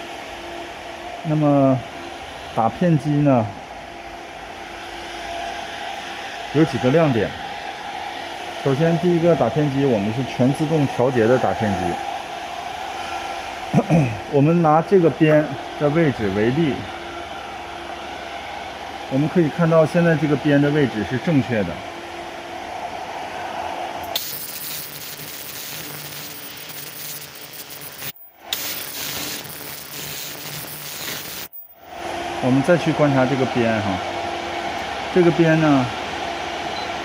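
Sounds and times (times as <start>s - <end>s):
machine whirring and humming: 24.0s - 33.0s.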